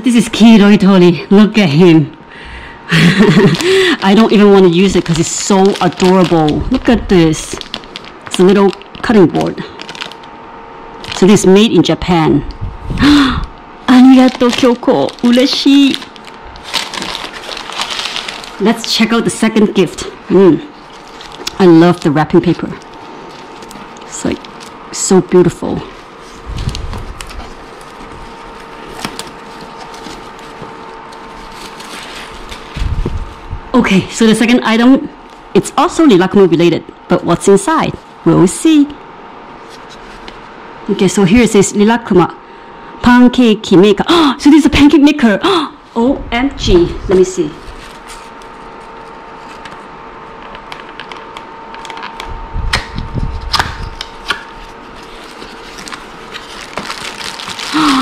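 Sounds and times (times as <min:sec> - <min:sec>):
faint steady hum: 0:00.0 - 0:58.0
wrapping paper rustling: 0:02.9 - 0:10.4, 0:11.0 - 0:11.6, 0:13.9 - 0:33.6, 0:39.5 - 0:40.5, 0:47.0 - 0:52.3, 0:53.4 - 0:58.0.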